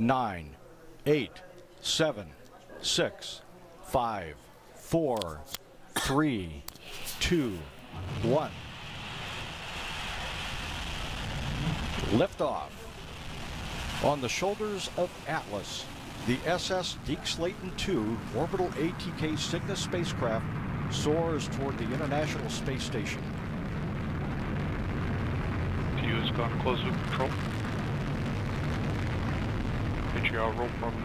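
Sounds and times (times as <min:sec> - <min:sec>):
rocket engine low rumble: 0:07.5 - 0:31.0.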